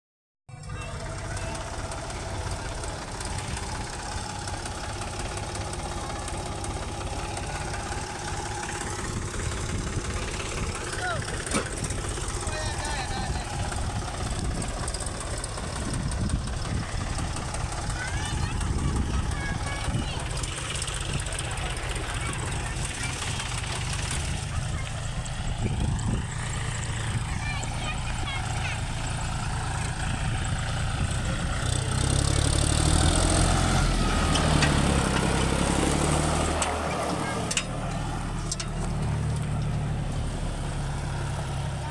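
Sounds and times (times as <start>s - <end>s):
diesel tractor engine rumbling: 0.5s - 41.9s.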